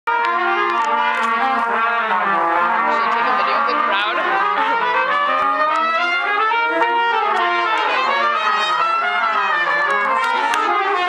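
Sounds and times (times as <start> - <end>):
trumpets playing in harmony: 0.1 - 11.0.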